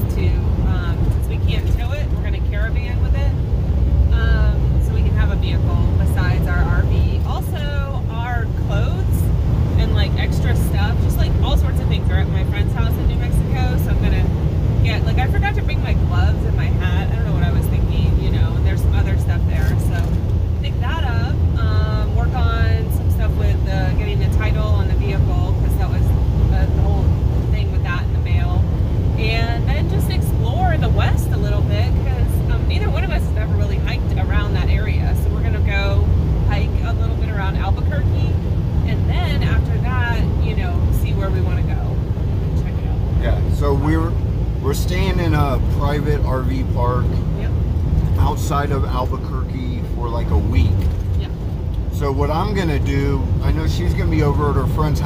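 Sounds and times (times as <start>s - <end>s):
people talking: 0.0s - 3.4s, 4.1s - 28.6s, 29.2s - 47.6s, 48.2s - 55.0s
engine and tyres drone: 0.0s - 55.0s.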